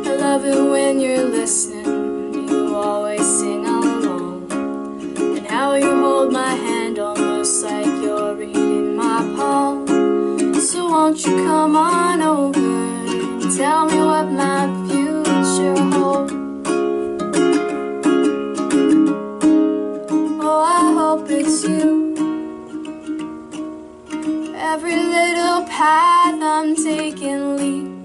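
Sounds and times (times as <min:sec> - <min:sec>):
woman singing: 0:00.0 - 0:04.6, 0:05.2 - 0:16.4, 0:20.2 - 0:22.4, 0:24.5 - 0:28.0
ukulele strumming: 0:00.0 - 0:28.0.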